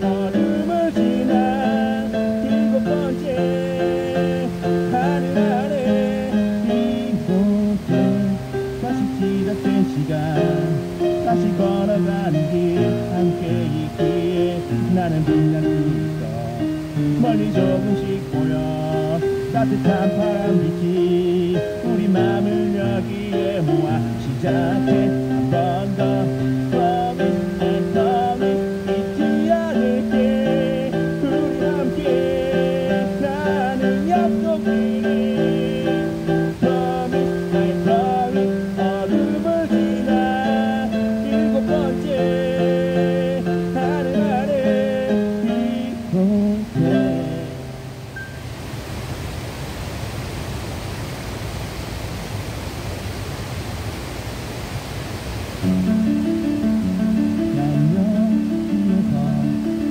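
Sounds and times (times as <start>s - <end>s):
electric keyboard music: 0.0s - 48.6s, 55.6s - 59.9s
water rushing over weir: 0.0s - 59.9s.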